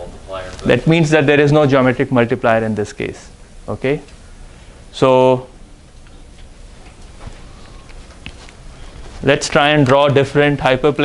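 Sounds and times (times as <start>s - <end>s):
quiet room hum: 0.0s - 11.0s.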